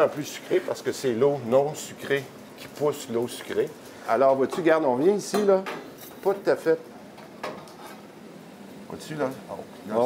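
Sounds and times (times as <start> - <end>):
sap evaporator boiling hiss: 0.0 - 10.0.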